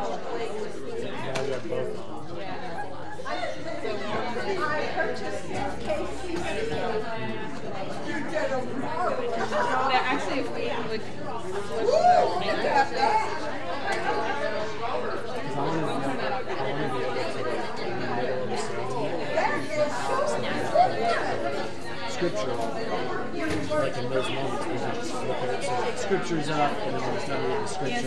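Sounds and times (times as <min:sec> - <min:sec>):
crowd chatter echoing in hall: 0:00.0 - 0:28.0.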